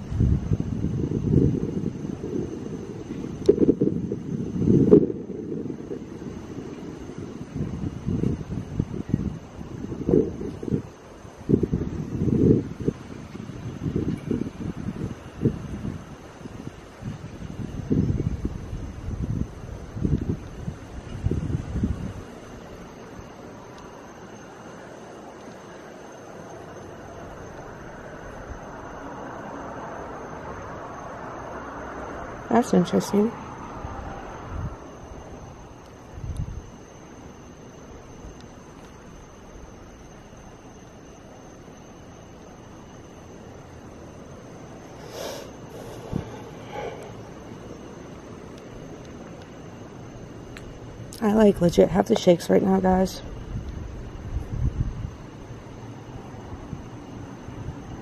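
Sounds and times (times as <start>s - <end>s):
wind buffeting microphone: 0.0s - 23.6s, 32.3s - 37.0s, 44.1s - 49.0s, 52.8s - 55.8s.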